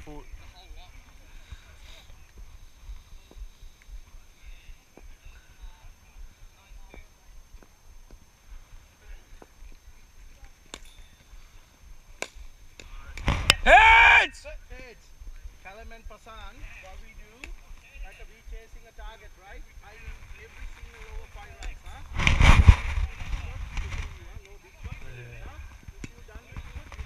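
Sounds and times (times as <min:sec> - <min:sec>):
loud shouted call: 0:13.5 - 0:14.5.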